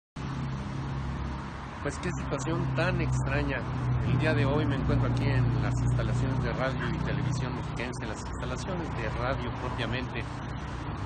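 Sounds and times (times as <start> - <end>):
street traffic: 0.2 - 11.0
man speaking: 1.8 - 10.4.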